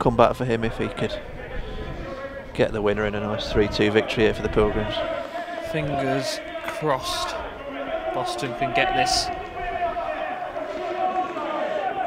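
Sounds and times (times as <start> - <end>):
commentary speech: 0.0 - 12.0
faint indistinct voices: 0.0 - 12.0.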